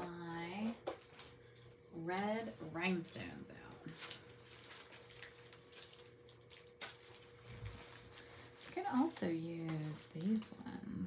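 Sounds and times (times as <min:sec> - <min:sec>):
faint steady hum: 0:00.0 - 0:11.0
plastic packets clicking and rustling: 0:03.9 - 0:11.0.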